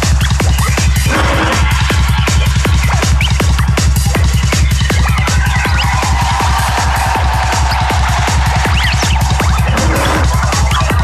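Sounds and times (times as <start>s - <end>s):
chirping sound effects: 0.0s - 6.8s, 7.6s - 11.0s
dark psytrance electronic music: 0.0s - 11.0s.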